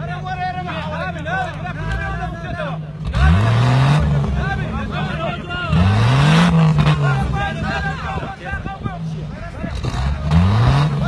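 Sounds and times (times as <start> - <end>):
off-road vehicle engine revving: 0.0 - 11.0.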